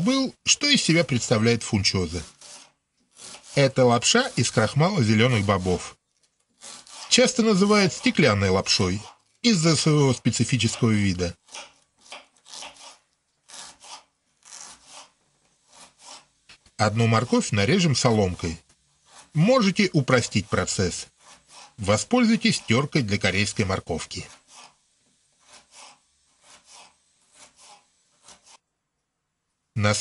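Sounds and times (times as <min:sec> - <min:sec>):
knife slicing onion on board: 0:01.3 - 0:05.9, 0:06.6 - 0:16.6, 0:17.2 - 0:24.8, 0:25.4 - 0:28.6
knife slicing on wooden board: 0:02.2 - 0:05.8, 0:06.6 - 0:09.2, 0:10.3 - 0:16.3.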